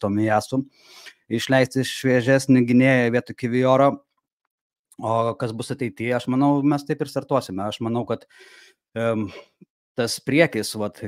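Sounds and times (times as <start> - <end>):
man talking: 0.0 - 4.0, 5.0 - 8.2, 9.0 - 11.0.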